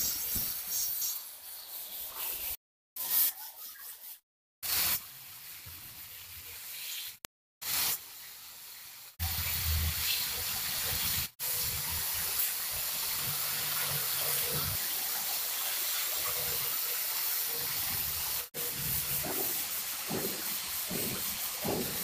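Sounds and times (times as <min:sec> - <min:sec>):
steady hissing noise: 0:18.5 - 0:22.0.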